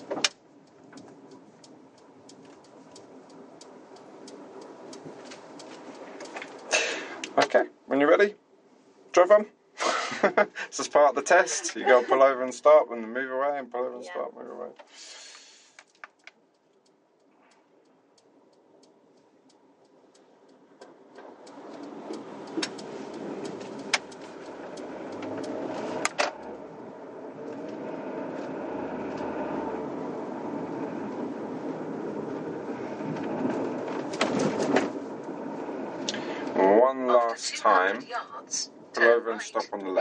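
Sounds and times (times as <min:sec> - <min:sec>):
light clicks: 0:00.0 - 0:07.4
car engine and tyre noise: 0:00.0 - 0:13.9, 0:14.5 - 0:40.0.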